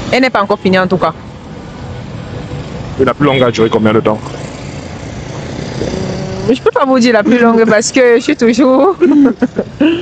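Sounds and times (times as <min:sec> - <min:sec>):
city street traffic hum: 0:00.0 - 0:10.0.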